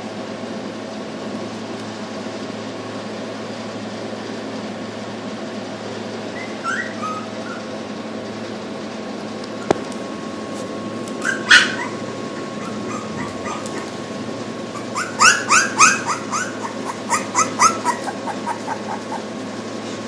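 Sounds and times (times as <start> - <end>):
puppy whimpering and squealing: 6.3 - 7.9, 11.2 - 14.0, 14.7 - 19.4.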